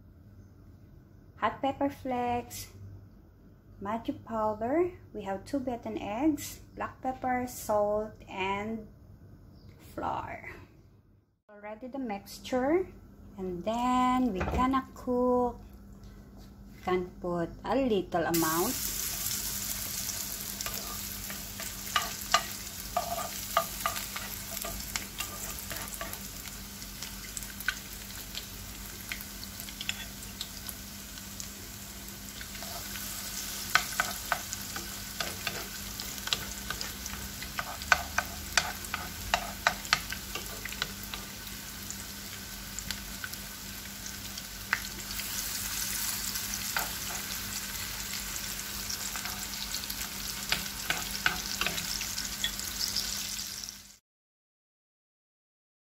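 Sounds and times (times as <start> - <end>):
patties sizzling in oil: 18.3 - 54.0
spoon working in pan: 18.4 - 30.8, 32.2 - 42.0, 44.7 - 53.3
oil crackling and popping: 18.8 - 30.6.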